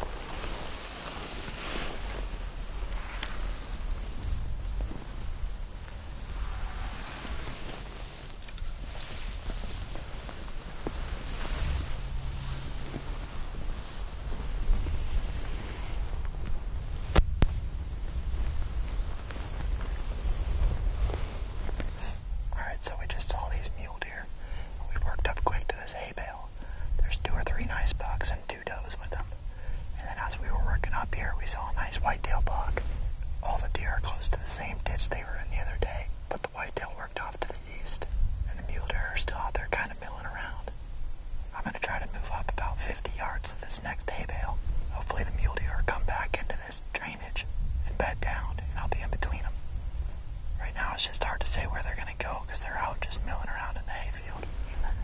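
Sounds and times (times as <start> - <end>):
low rumble: 0.0 - 23.9
men whispering: 21.9 - 40.7, 41.5 - 49.6, 50.6 - 55.0.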